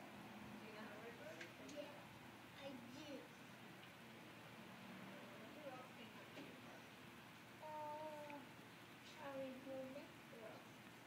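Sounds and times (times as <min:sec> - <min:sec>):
faint held vocal sound: 0:07.6 - 0:10.1.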